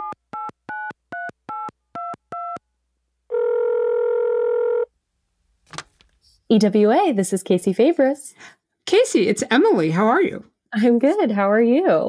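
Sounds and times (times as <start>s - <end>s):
phone ringing tone: 3.3s - 4.9s.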